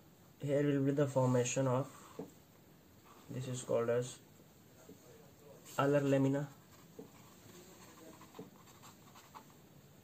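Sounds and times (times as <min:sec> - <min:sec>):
pen scratching on paper: 0:06.6 - 0:09.6.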